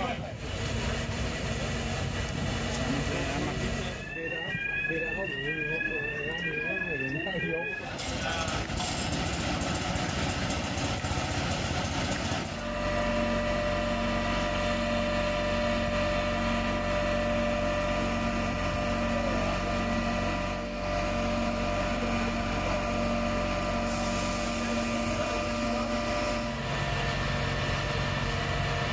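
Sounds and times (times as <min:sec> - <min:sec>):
truck engine idling: 0:00.0 - 0:28.9.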